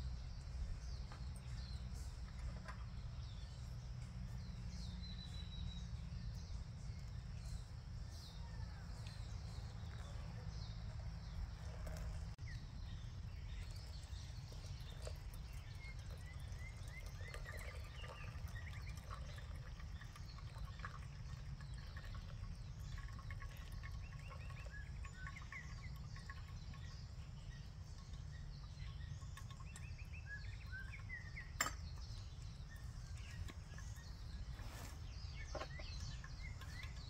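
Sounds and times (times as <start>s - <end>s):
low outdoor rumble: 0.0s - 37.0s
small birds chirping: 0.0s - 37.0s.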